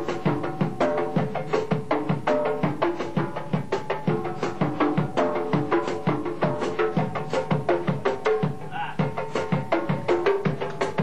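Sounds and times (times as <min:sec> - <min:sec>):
low drum beat: 0:00.0 - 0:11.0.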